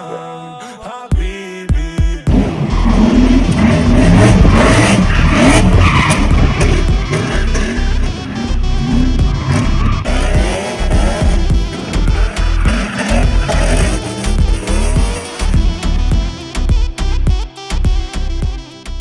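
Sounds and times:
background music: 0.0s - 19.0s
car engine revving: 2.3s - 17.2s
tyres squealing: 2.8s - 16.0s.

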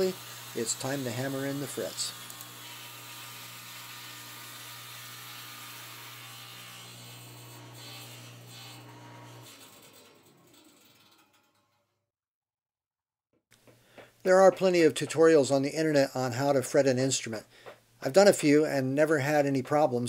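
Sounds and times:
table saw running: 0.0s - 11.4s
saw blade spinning down: 0.0s - 11.7s.

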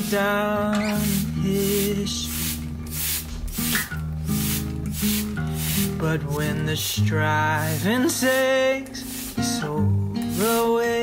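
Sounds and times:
slow song: 0.0s - 11.0s
spray bottle misting water: 0.0s - 11.0s.

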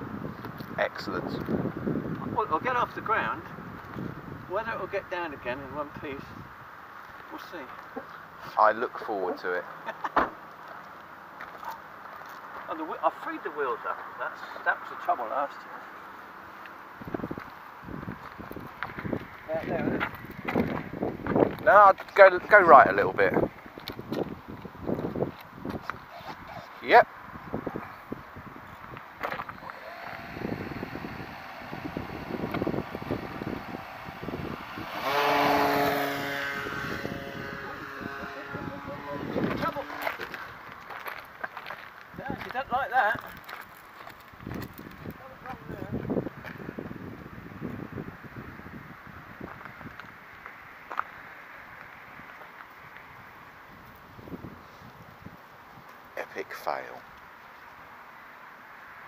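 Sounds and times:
wind noise: 0.0s - 6.8s, 16.9s - 50.4s, 52.1s - 56.0s
model plane motor whine: 29.4s - 40.3s.

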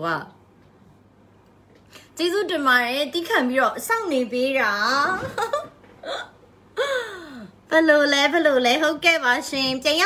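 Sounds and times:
woman laughing: 5.2s - 7.5s.

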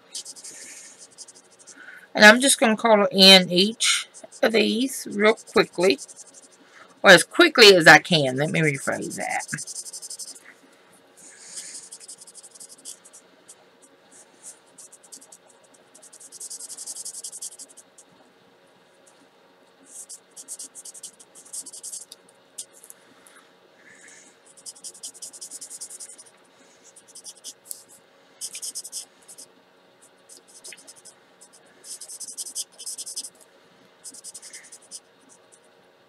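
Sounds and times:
marker nib scratching on card: 0.1s - 1.8s, 3.8s - 6.6s, 8.2s - 10.4s, 11.2s - 18.1s, 19.9s - 22.9s, 24.5s - 26.3s, 26.9s - 33.4s, 34.0s - 35.6s.

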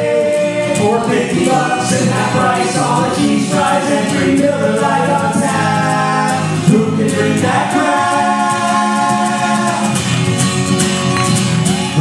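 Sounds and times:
men singing in harmony: 0.0s - 10.2s
acoustic guitar: 0.0s - 12.0s.

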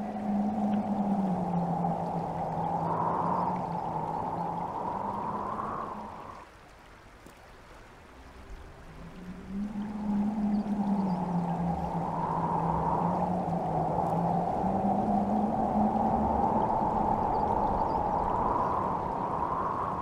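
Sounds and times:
low droning tone: 0.0s - 6.4s, 8.3s - 20.0s
wind howling: 0.0s - 6.5s, 8.0s - 20.0s.

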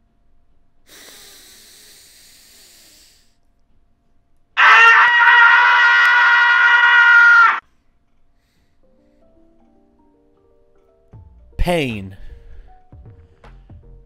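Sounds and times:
man screaming: 4.6s - 7.6s.

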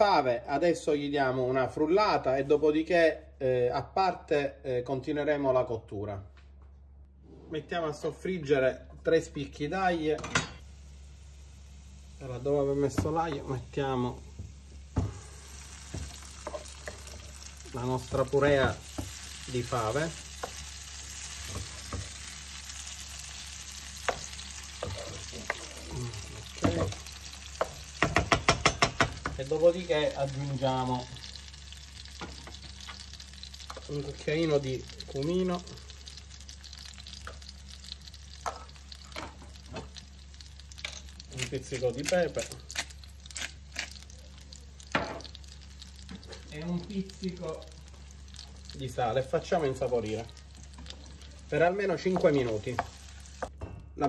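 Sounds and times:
garlic frying in oil: 10.6s - 53.6s
spoon knocking on pan: 14.4s - 15.2s, 26.6s - 27.0s, 27.6s - 29.4s, 51.8s - 53.8s
peppercorns crunching in grinder: 40.8s - 44.3s
wooden spoon stirring: 50.2s - 53.5s.

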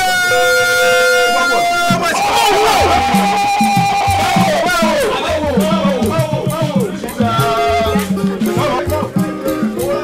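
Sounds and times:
long held notes: 0.0s - 10.0s
low steady drum beat: 1.9s - 10.0s.

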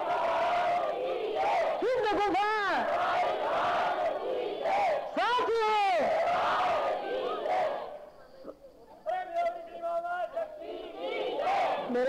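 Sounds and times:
crowd shouting in unison: 0.0s - 8.0s, 10.2s - 12.0s.

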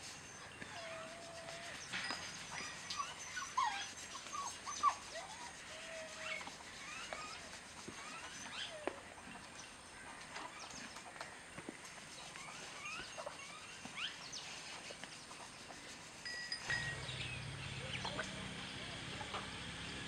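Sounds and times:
outdoor background noise: 0.0s - 20.0s
animal chirps and squeaks: 0.3s - 9.0s, 11.9s - 18.4s.

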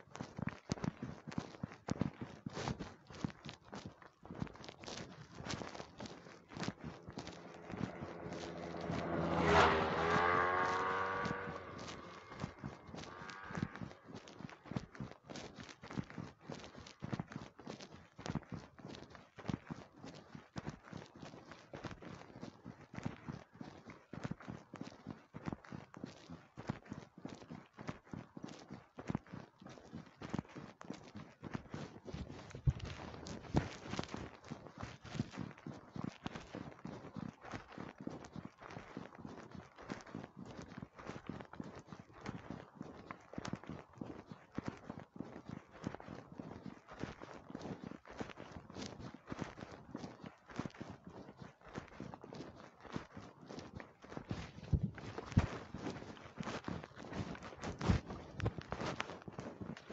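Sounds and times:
footsteps on hard surface: 0.0s - 59.9s.

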